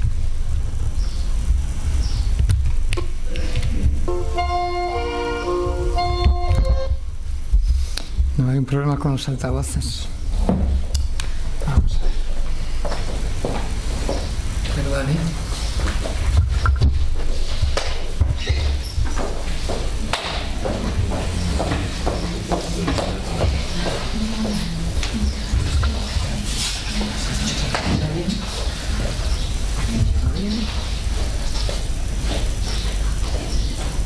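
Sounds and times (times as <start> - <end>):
steady low rumble: 5.4 - 27.0
people talking quietly: 19.6 - 33.9.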